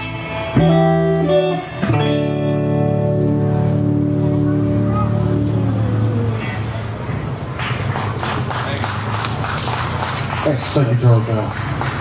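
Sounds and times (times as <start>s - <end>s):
live rock song: 0.0s - 6.4s
audience clapping: 7.5s - 12.0s.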